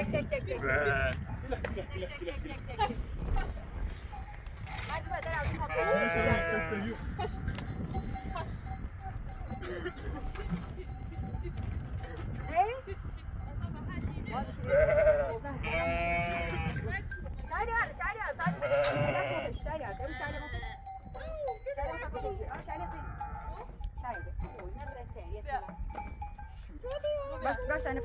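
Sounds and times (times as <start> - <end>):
sheep and goats bleating: 0.0 - 1.6, 5.3 - 7.3, 14.4 - 17.1, 18.1 - 20.9, 22.2 - 23.8.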